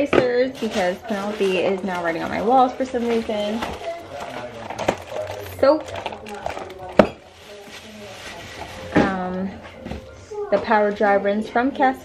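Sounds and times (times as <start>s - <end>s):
rustling and handling noise: 0.0s - 11.4s.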